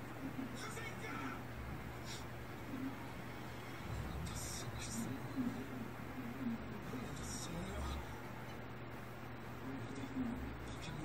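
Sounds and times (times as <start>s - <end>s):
low hum: 0.0s - 10.9s.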